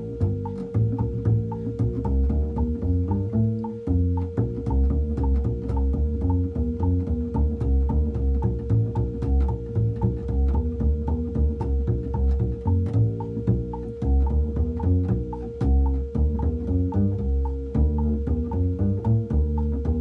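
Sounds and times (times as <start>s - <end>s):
metronome clicking: 0.0s - 20.0s
plucked double bass: 0.0s - 20.0s
steady held tone: 0.0s - 20.0s.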